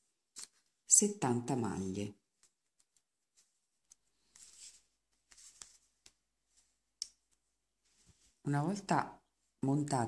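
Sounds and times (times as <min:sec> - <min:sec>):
soft yarn rustle: 0:00.0 - 0:10.0.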